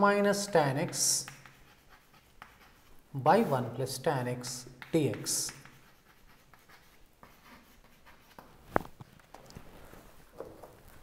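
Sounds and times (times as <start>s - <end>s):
chalk tapping and scratching: 0.6s - 3.8s, 4.4s - 9.3s.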